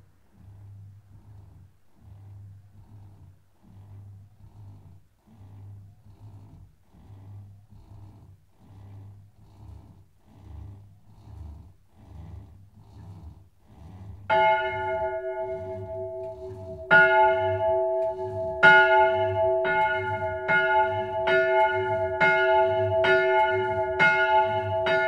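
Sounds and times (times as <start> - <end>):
electric motor humming in pulses: 0.4 - 25.0.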